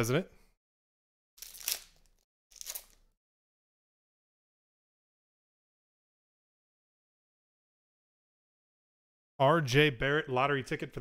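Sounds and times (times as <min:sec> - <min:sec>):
wrapper crinkling: 0:01.4 - 0:03.1.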